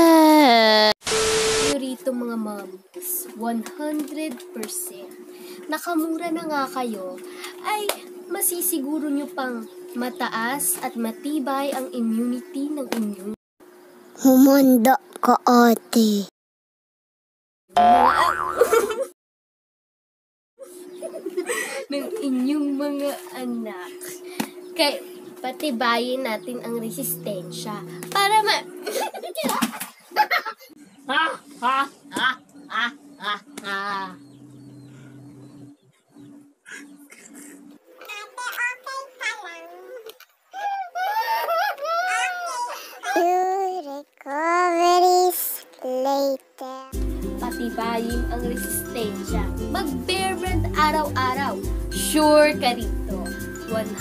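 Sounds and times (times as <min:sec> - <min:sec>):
cartoon boing sound effect: 0:17.8 - 0:19.0
steady tone: 0:26.2 - 0:28.9.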